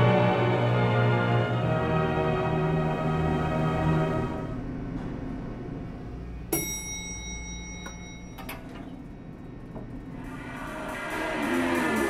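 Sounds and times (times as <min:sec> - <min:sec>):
low hum: 0:00.0 - 0:12.0
elevator ding: 0:06.2 - 0:12.0.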